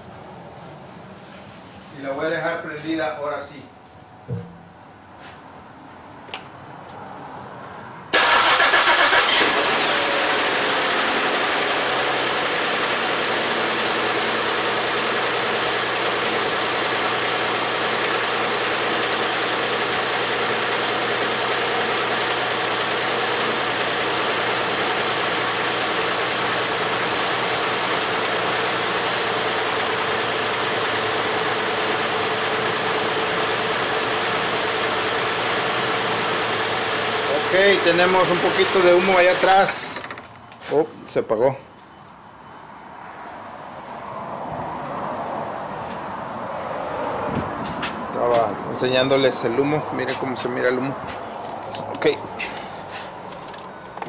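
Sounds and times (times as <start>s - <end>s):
car engine starting and idling: 8.1s - 40.4s, 47.6s - 54.0s.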